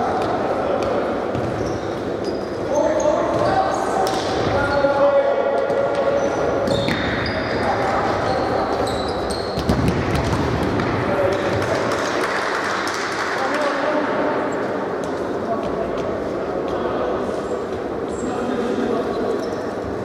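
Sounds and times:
shoes squeaking on court: 0:00.8 - 0:04.9, 0:05.7 - 0:10.4, 0:19.1 - 0:19.9
ball kicked and bouncing: 0:09.5 - 0:10.9.

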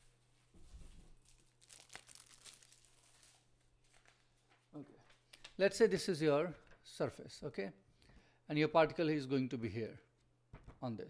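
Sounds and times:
paper rustling and crinkling: 0:00.6 - 0:05.3.

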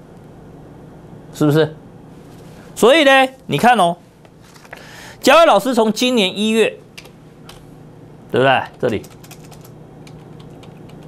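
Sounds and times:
keyboard keys clicking: 0:08.7 - 0:11.0.

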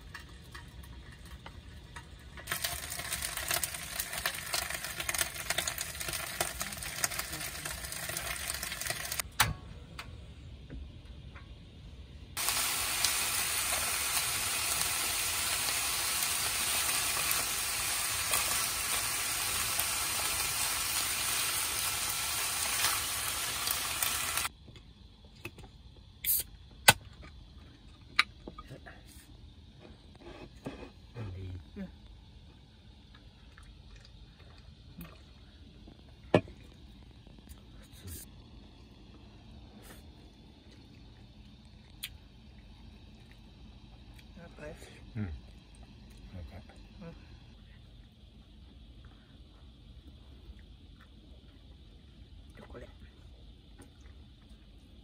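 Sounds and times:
food sizzling in a pan: 0:00.0 - 0:09.2, 0:12.4 - 0:24.5.

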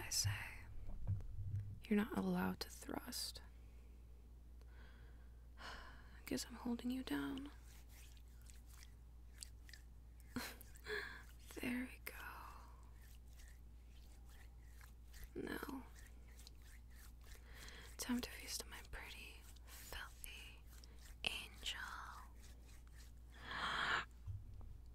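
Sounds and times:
woman whispering: 0:00.0 - 0:00.8, 0:01.8 - 0:03.5, 0:06.2 - 0:07.6, 0:11.4 - 0:12.9, 0:15.3 - 0:16.1, 0:17.8 - 0:22.4
woman laughing: 0:10.4 - 0:11.2
soft breathy vocal sounds: 0:23.3 - 0:24.2.

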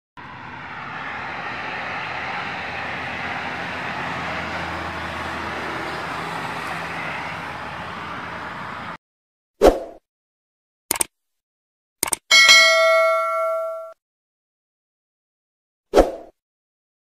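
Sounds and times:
highway traffic rushing: 0:00.2 - 0:09.0.

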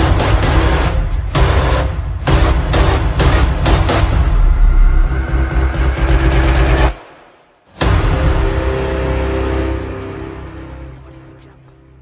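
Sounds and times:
deep rumbling drone: 0:04.0 - 0:06.9.

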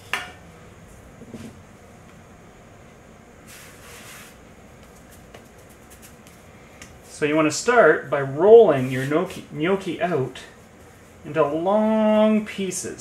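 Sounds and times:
hands brushing dough: 0:03.5 - 0:07.3, 0:08.7 - 0:09.5.

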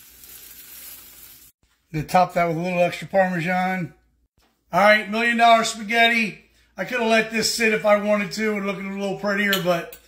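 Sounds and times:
casserole sizzling: 0:00.0 - 0:01.6.

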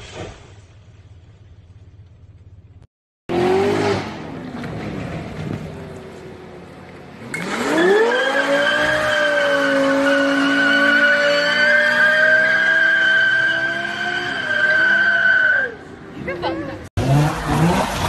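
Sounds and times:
car engine revving: 0:03.3 - 0:06.3, 0:07.1 - 0:15.0, 0:17.0 - 0:18.0.

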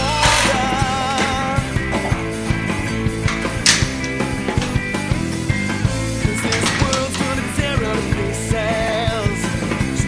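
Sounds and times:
instrumental rock music: 0:00.0 - 0:10.0.

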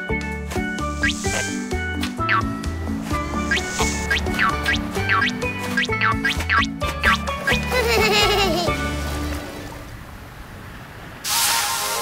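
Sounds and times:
background music: 0:00.0 - 0:09.8
cartoon hissing whoosh: 0:01.0 - 0:01.8, 0:03.5 - 0:04.1.

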